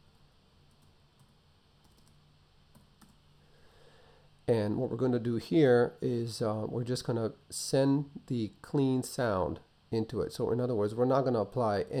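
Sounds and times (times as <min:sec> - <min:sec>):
faint computer keyboard clicks: 0:00.7 - 0:03.2.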